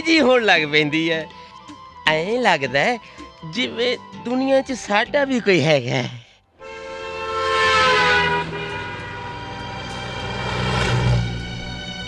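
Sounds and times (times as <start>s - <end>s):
road traffic noise: 6.6s - 12.0s
truck horn passing: 6.6s - 12.0s.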